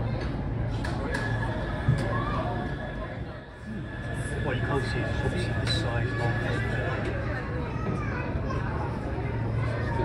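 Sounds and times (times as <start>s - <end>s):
low steady ferry hum: 0.0s - 10.0s
passengers chattering: 0.0s - 10.0s.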